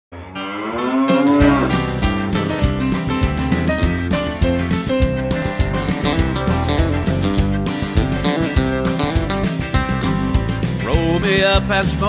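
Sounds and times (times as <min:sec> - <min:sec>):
cow mooing: 0:00.2 - 0:02.0
music: 0:00.2 - 0:12.0.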